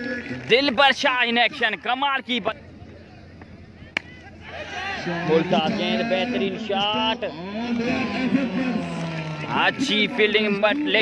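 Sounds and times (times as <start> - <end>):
man commentating: 4.9 - 11.0.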